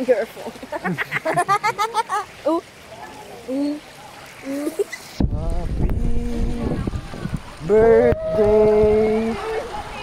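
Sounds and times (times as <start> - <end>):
pool water sloshing and splashing: 0.0 - 10.0.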